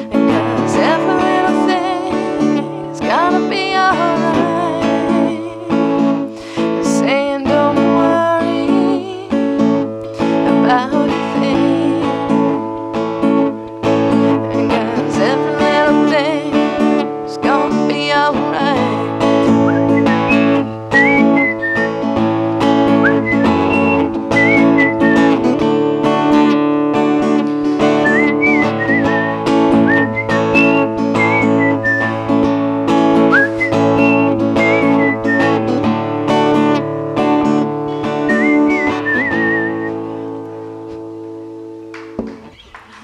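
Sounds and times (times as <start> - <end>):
acoustic guitar strumming: 0.0 - 42.7
person whistling a melody: 19.5 - 22.0, 22.9 - 25.5, 27.8 - 32.2, 33.2 - 35.7, 38.2 - 40.0.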